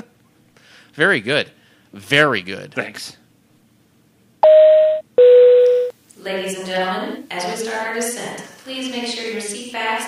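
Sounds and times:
electronic cabin chime tone: 4.4 - 5.9.

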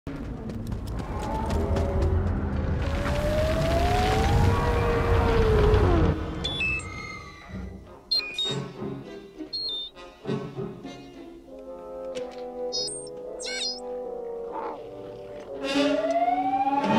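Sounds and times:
rumbling creature roar: 1.0 - 6.2
film music with high tones: 6.5 - 16.9.

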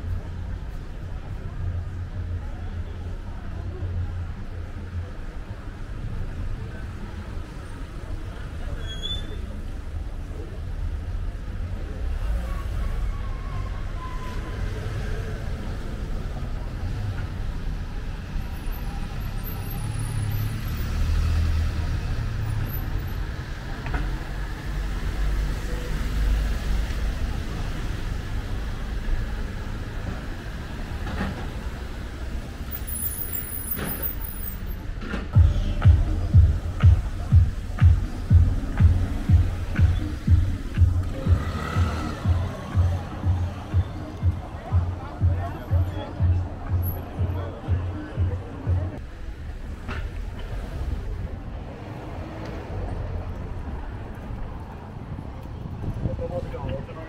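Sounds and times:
traffic rumble: 0.0 - 57.0
music with steady bass beat: 35.4 - 49.0.

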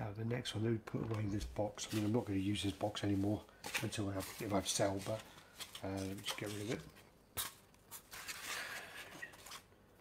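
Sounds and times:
styrofoam scratchy rubbing: 7.9 - 9.7.

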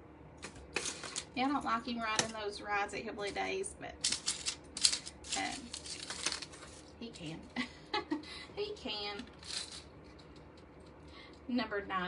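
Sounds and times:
metal jewelry clinking and rattling: 4.0 - 6.8, 9.3 - 10.4.

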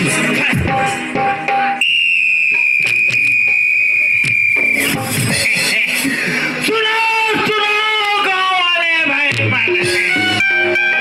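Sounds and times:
shrill high-pitched tone: 1.8 - 5.4.

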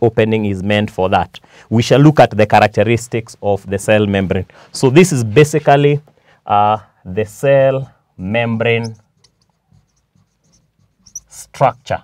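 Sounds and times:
marker writing on whiteboard: 8.7 - 11.8.

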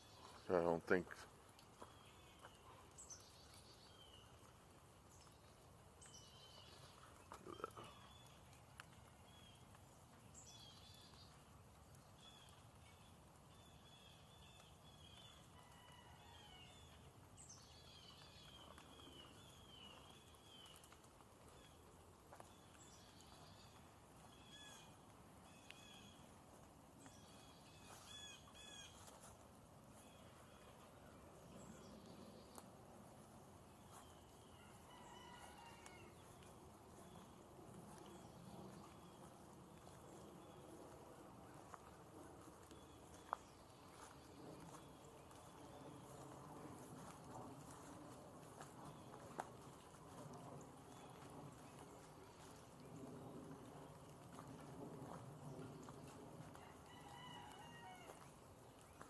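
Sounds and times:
small birds chirping: 0.0 - 15.8, 16.8 - 34.5.

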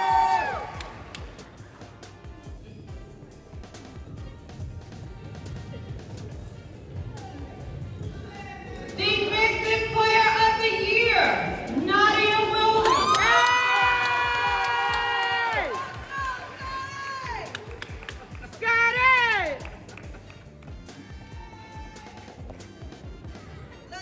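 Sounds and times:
audience cheering: 0.0 - 1.1, 12.7 - 18.2.

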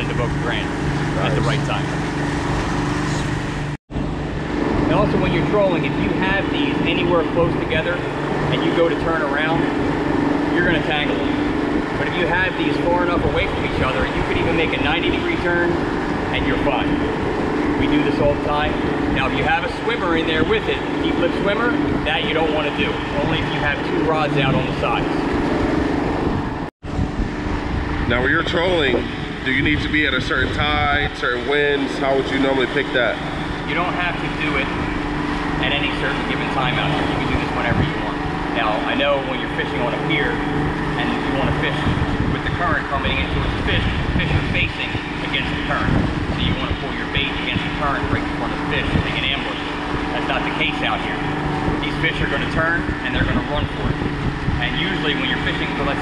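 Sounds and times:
boat engine humming: 0.0 - 56.0
water noise: 0.0 - 56.0
wind: 0.0 - 56.0.

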